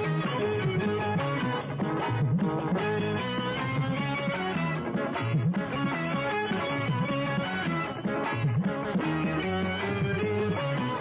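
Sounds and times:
bass line: 0.0s - 11.0s
electric guitar melody: 0.0s - 11.0s.

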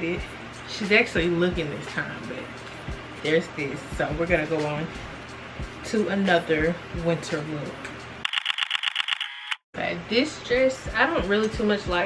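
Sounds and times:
fast run of thin clicks: 8.3s - 9.6s.

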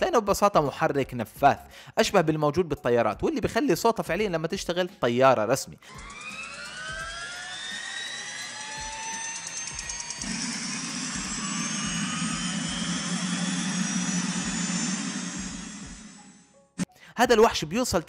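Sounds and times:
turbine engine whine rising: 5.8s - 16.6s
deep engine rush: 10.1s - 16.4s.

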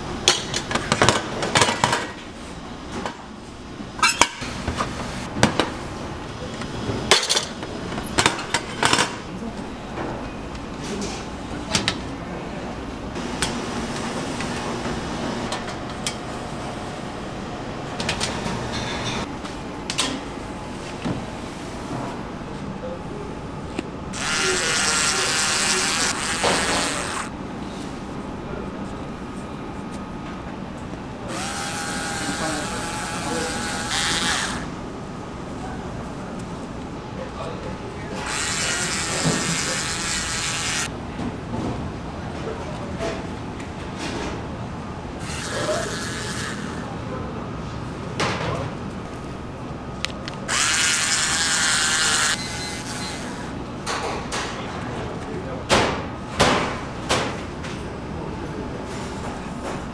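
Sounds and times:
small electric drill running: 24.2s - 27.3s, 31.3s - 34.7s, 38.2s - 40.9s, 45.2s - 46.8s, 50.5s - 53.2s.

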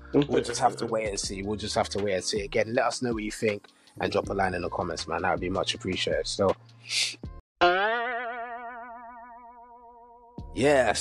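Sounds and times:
cartoon boing: 7.6s - 10.3s.

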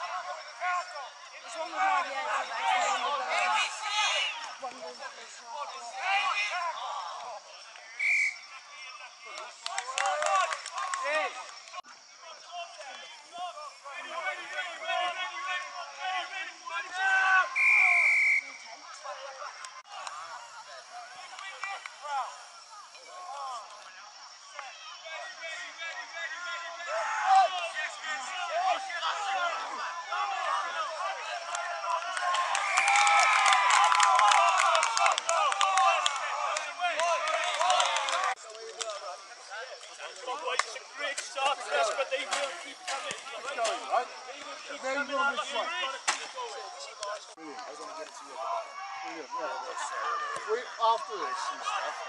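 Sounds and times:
people calling out: 0.0s - 52.0s
referee's whistle blasts: 8.0s - 8.5s, 17.4s - 18.7s.

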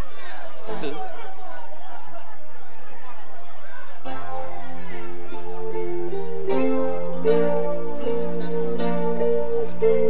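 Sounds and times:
live band playing: 4.1s - 10.0s.

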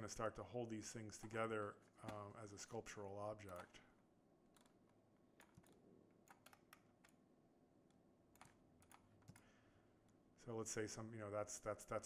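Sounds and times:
keyboard and mouse clicks: 3.4s - 3.8s, 4.5s - 7.2s, 7.8s - 9.5s.

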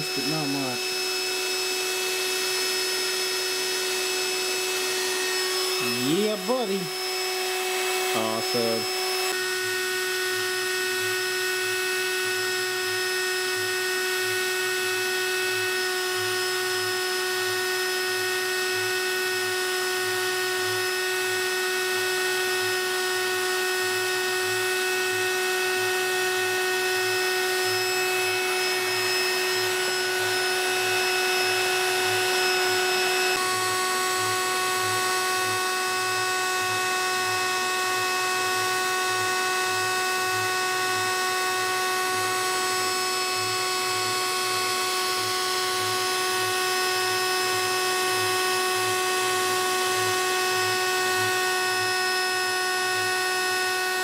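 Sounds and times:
stepper motors whining: 0.0s - 9.4s.

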